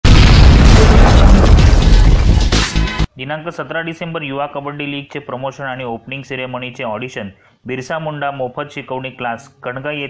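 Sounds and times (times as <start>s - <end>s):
explosion boom sound effect: 0.0s - 3.1s
music: 1.7s - 3.1s.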